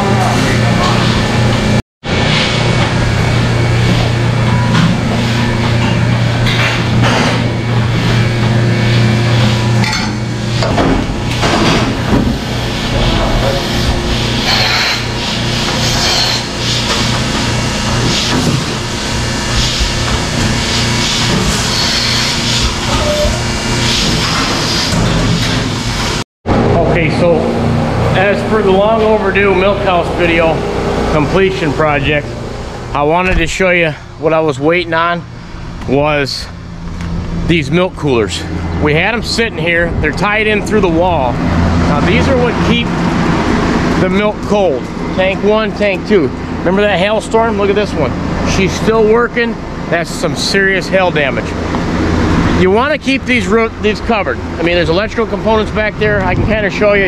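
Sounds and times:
milking machine hum: 0.0 - 57.0.

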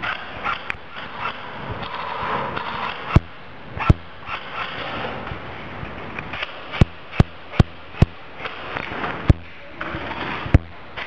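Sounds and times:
airsoft gun shots: 2.6 - 5.0, 6.3 - 9.5.

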